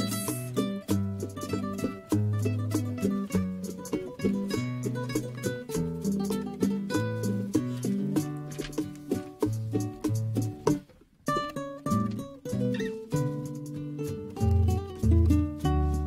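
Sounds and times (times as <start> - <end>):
acoustic guitar bass notes: 0.0 - 16.0
plucked guitar run: 0.0 - 16.0.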